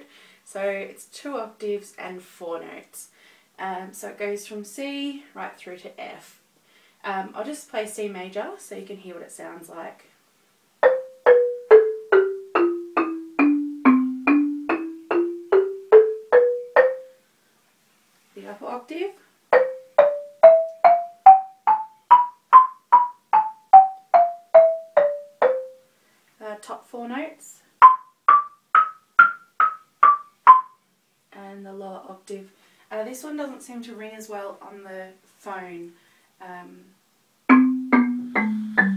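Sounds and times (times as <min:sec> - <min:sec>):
marimba playing a scale: 0:10.8 - 0:17.2, 0:19.5 - 0:25.8, 0:27.8 - 0:30.8, 0:37.5 - 0:38.9.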